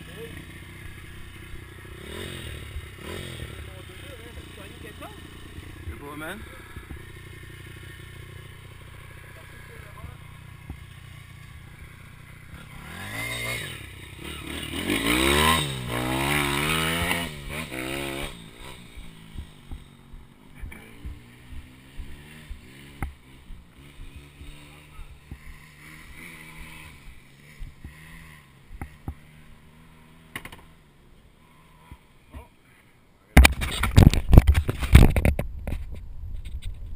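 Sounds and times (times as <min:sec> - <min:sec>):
motorbike engine revving: 0:00.0 - 0:32.5.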